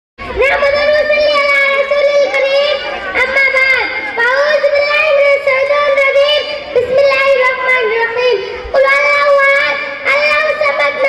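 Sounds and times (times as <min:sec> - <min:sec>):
girl chanting into microphone: 0:00.3 - 0:11.0.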